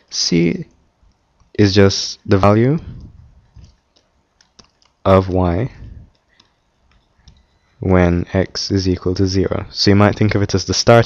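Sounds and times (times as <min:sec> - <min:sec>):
person speaking: 0:00.0 - 0:00.8, 0:01.4 - 0:03.8, 0:04.4 - 0:06.2, 0:07.2 - 0:11.0
stylus tapping on pen tablet: 0:06.1 - 0:07.5.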